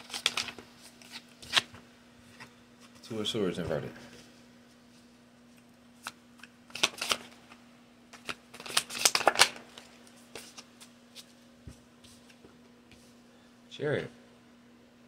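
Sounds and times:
cards being shuffled: 0.0s - 1.8s, 6.0s - 7.5s, 8.1s - 11.3s.

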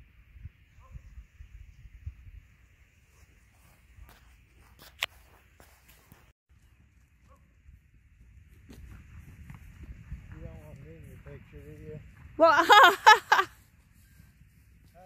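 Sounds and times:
horses galloping over grass: 1.2s - 15.0s.

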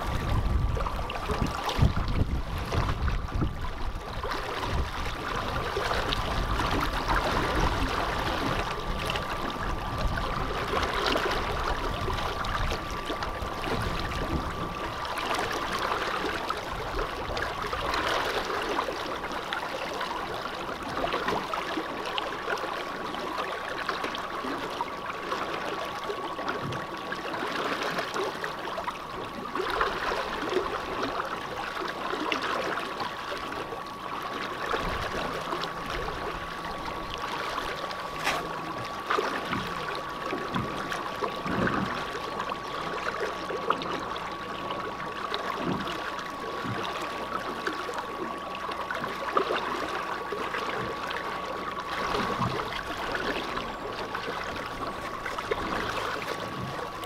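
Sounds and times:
electric outboard motor whine: 0.0s - 57.0s
water splashing along boat hull: 0.0s - 57.0s.

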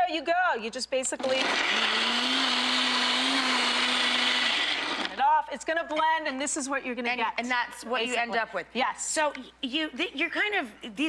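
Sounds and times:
blender running: 1.2s - 5.2s.

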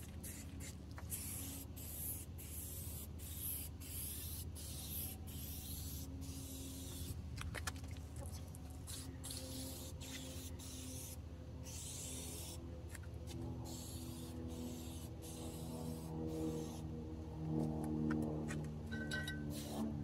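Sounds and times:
spray can hissing bursts: 0.2s - 7.1s, 8.9s - 12.6s, 13.7s - 16.8s, 19.5s - 19.8s.

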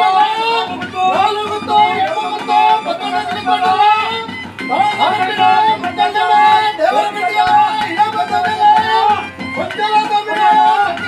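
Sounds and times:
double-reed wind instrument melody: 0.0s - 11.0s.

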